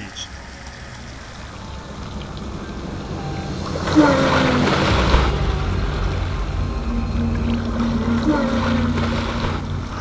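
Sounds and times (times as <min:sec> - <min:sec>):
water sloshing and lapping: 0:00.3 - 0:10.0
low rumble: 0:01.3 - 0:10.0.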